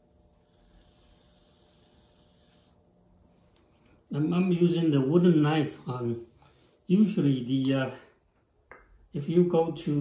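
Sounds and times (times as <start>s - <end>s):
faint hiss: 0.3s - 8.2s.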